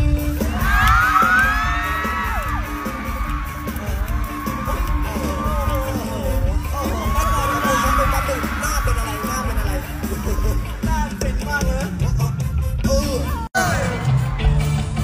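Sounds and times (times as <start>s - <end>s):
pop music with steady beat: 0.0s - 15.0s
audience shrieking and cheering: 0.1s - 15.0s.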